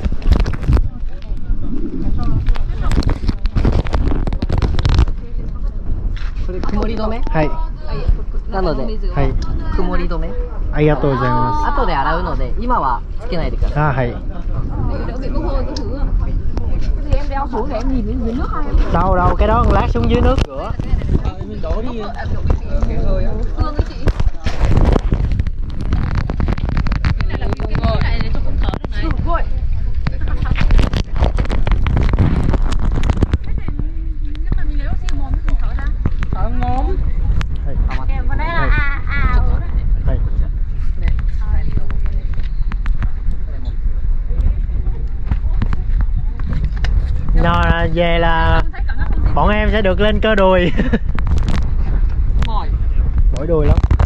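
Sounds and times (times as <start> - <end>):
indistinct chatter of people: 0.0 - 54.0
wind buffeting microphone: 0.0 - 54.0.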